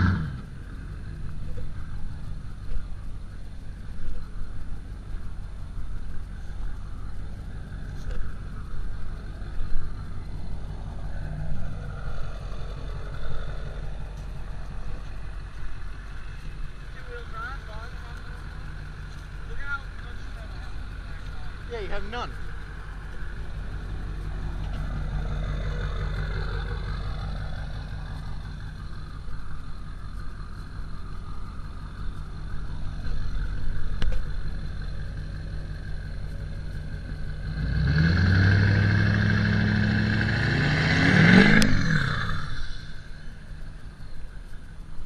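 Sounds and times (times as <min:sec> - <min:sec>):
pickup truck engine idling and revving: 0:00.0 - 0:45.0.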